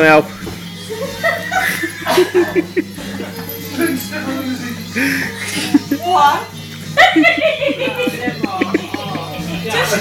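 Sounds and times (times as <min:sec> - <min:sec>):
person laughing: 0:01.2 - 0:04.0, 0:05.4 - 0:06.0, 0:07.0 - 0:09.6.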